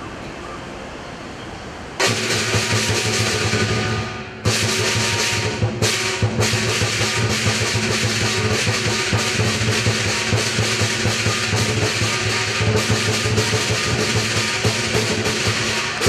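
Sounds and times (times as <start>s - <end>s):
big drum beating fast: 2.0s - 16.0s
cymbals clashing: 2.0s - 16.0s
gong: 2.0s - 16.0s.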